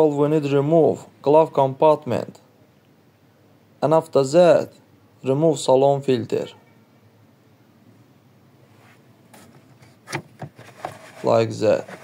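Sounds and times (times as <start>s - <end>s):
plastic clicks and rustles: 9.3s - 12.0s.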